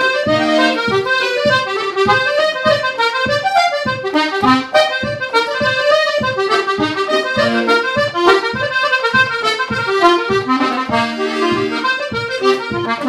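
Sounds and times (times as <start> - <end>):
button accordion playing reel: 0.0 - 13.0.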